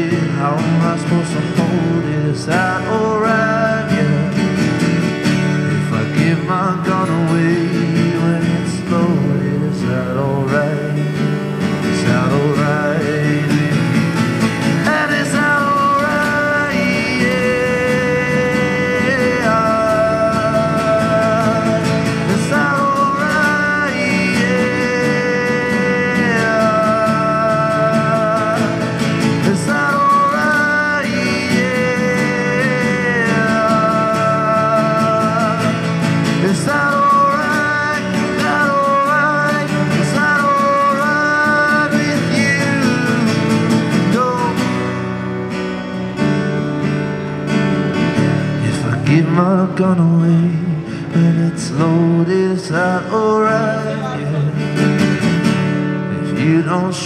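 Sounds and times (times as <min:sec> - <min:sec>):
person singing: 0:00.0 - 0:04.6, 0:05.6 - 0:45.2
strummed acoustic guitar: 0:00.0 - 0:57.0.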